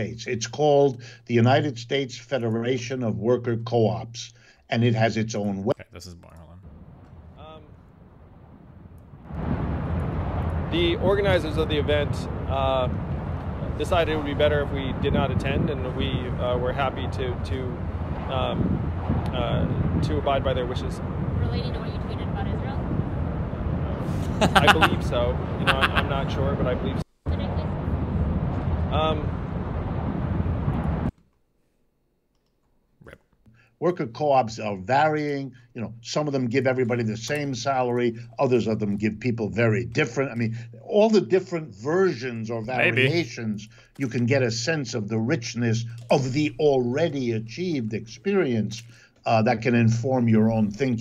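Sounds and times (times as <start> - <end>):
man speaking: 0.0 - 6.6, 7.4 - 7.7, 10.7 - 13.0, 13.7 - 18.6, 24.3 - 27.0, 29.0 - 29.3, 33.8 - 51.0
faint low hum: 0.0 - 31.1
steady rushing noise: 6.6 - 31.1
wind on microphone: 6.7 - 31.1
street traffic noise: 21.0 - 31.1.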